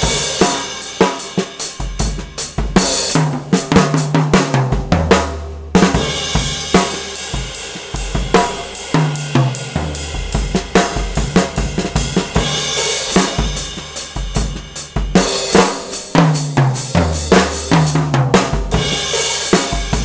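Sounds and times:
drum kit groove: 0.0s - 20.0s
low drums booming: 1.8s - 15.6s.

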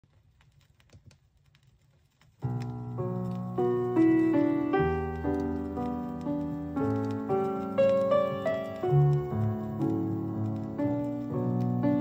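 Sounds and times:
vinyl crackles and clicks: 0.0s - 12.0s.

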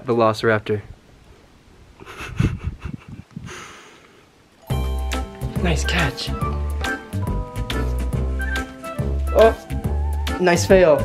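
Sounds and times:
dog sniffing: 6.4s - 10.0s.

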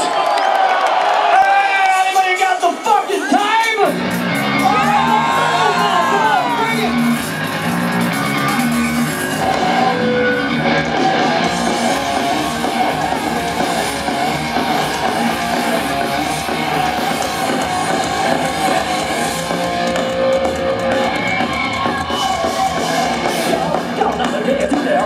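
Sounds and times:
drums: 0.0s - 25.0s
distorted electric guitars: 2.0s - 25.0s
bass guitar: 3.9s - 25.0s.

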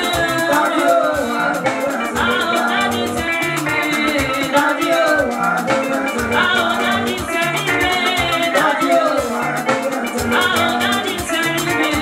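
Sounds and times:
live band music: 0.0s - 12.0s
woman singing: 0.0s - 12.0s.

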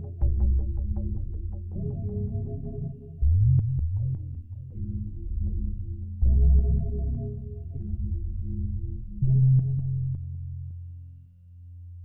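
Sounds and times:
dark ambient synthesizer music: 0.0s - 11.3s.

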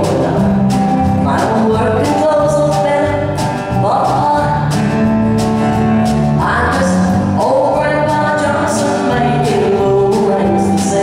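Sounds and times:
live country band with acoustic guitar: 0.0s - 11.0s.

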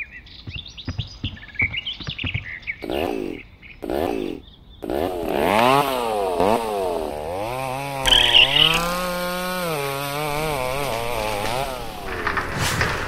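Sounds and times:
chainsaw engine revving: 2.8s - 13.0s.

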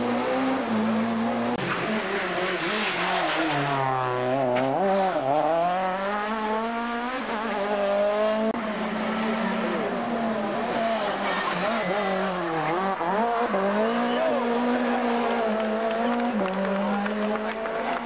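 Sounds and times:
rally car engines revving: 0.0s - 18.0s.

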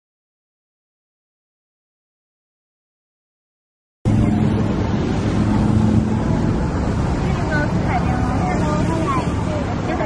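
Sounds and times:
motor engines droning: 4.1s - 10.0s
people's voices: 4.1s - 10.0s.

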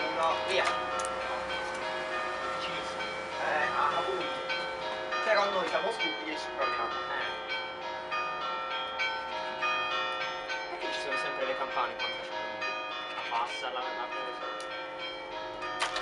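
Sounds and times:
church bells pealing: 0.0s - 16.0s.

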